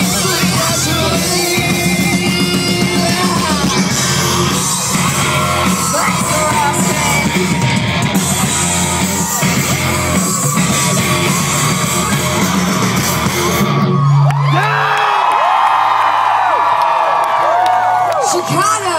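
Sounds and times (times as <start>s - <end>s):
hard rock band playing live: 0.0s - 14.5s
crowd cheering and whooping: 0.0s - 18.9s
high yells from crowd: 0.1s - 12.4s, 13.3s - 18.9s.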